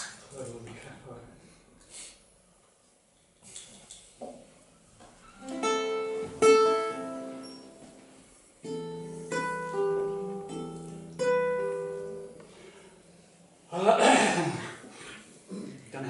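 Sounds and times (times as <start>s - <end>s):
acoustic guitar chords ringing: 5.4s - 12.9s.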